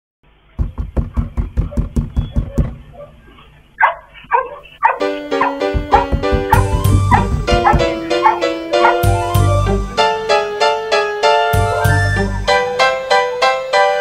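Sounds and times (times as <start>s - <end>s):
rapid knocking on door: 0.6s - 2.9s, 5.5s - 8.4s
dog barking: 2.5s - 9.1s
piano tune: 4.9s - 14.0s.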